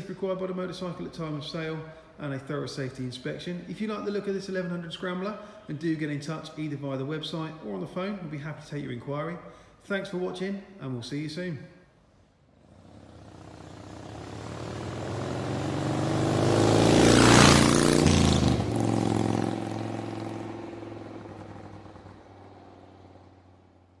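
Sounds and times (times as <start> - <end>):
vehicle engine passing by: 12.6 - 23.9.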